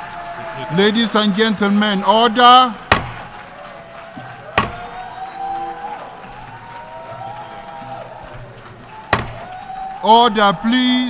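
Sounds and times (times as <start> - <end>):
crowd noise: 0.0 - 11.0
gavel striking desk: 2.8 - 3.3, 4.1 - 5.0, 7.8 - 9.6.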